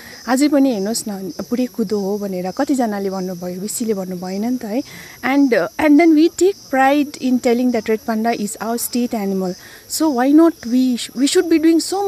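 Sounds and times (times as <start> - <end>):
insects chirring: 0.0 - 12.0
woman speaking: 0.0 - 12.0.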